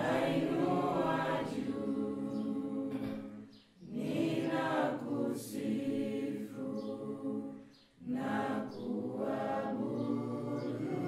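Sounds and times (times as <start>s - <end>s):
choir singing sustained notes: 0.0s - 11.0s.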